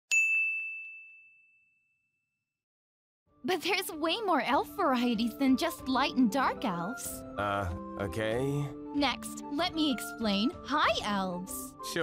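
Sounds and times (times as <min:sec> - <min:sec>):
high bell-like ding: 0:00.1 - 0:02.4.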